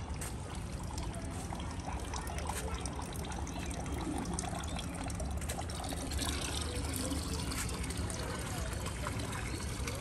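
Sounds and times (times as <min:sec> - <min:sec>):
water trickling into gutter: 0:00.0 - 0:10.0.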